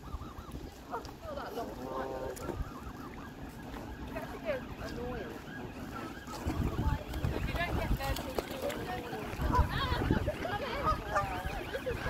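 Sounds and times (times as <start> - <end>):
geese honking: 0.0 - 12.0
wind rumble on microphone: 0.0 - 12.0.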